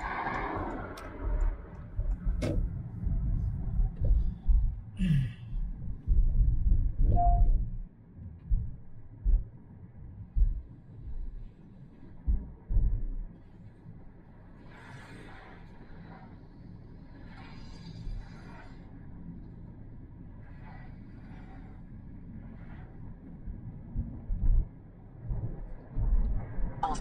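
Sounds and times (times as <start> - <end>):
road and tyre noise in car: 0.0 - 27.0
short low thumps: 0.6 - 11.5, 12.2 - 13.4, 23.9 - 26.8.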